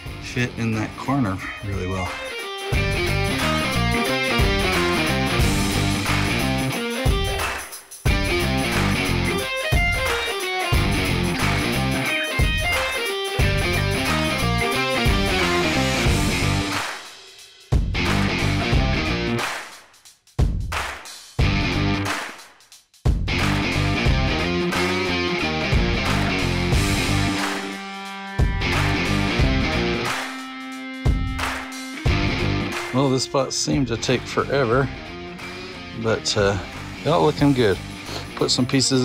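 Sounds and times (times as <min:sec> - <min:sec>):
electric guitar music with bass: 0:00.0 - 0:16.8, 0:18.0 - 0:19.4, 0:21.4 - 0:22.1, 0:23.3 - 0:39.0.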